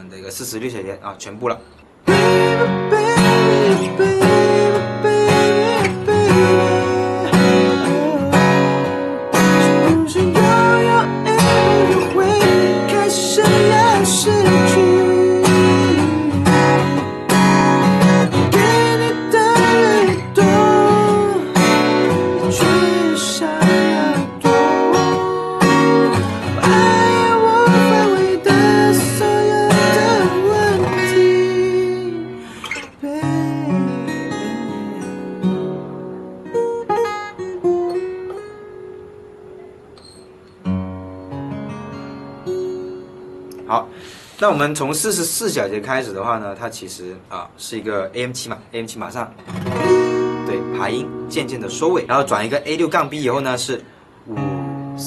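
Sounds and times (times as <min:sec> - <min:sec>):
acoustic guitar strumming: 0:01.7 - 0:46.1, 0:48.9 - 0:55.0.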